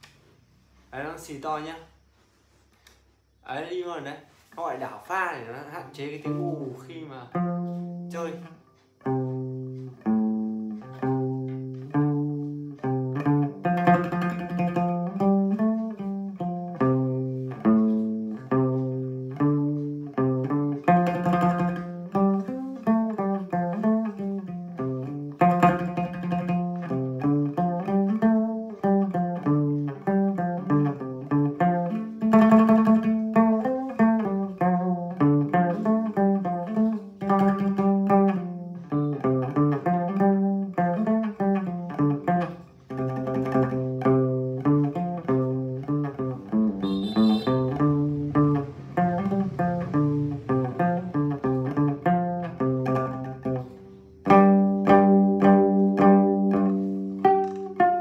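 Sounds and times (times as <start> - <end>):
plucked moon lute melody: 6.0 - 58.0.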